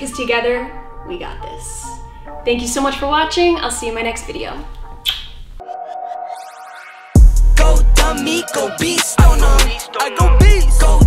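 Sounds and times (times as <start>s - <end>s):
faint background music: 0.0s - 5.6s
glittering upward sweeps: 5.6s - 9.2s
held electronic tone: 5.6s - 9.2s.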